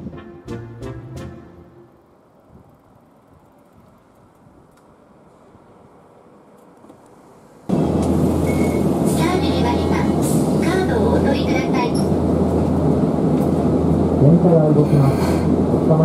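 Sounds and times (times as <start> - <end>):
streetcar low hum: 0.0 - 16.0
voices: 9.1 - 12.2.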